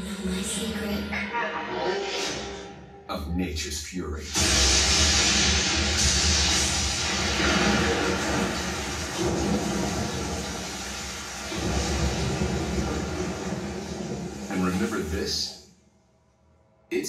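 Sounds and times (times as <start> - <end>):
music: 0.0 - 3.4, 4.2 - 17.0
storm rushing noise with rumbling: 4.4 - 15.4.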